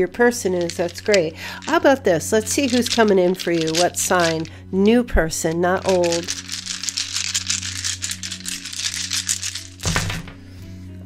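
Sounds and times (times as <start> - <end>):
soft background music: 0.0 - 11.0
cards being shuffled: 0.4 - 4.5, 5.4 - 10.4
slap of cards: 9.8 - 10.4.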